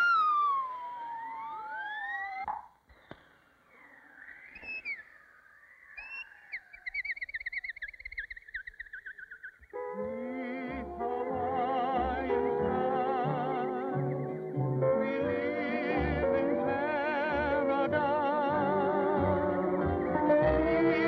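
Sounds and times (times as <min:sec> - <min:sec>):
slide whistle swoops: 0:00.0 - 0:02.6, 0:03.7 - 0:10.0
falling whistle glide: 0:00.0 - 0:10.0
high warbling whistle: 0:00.0 - 0:10.0.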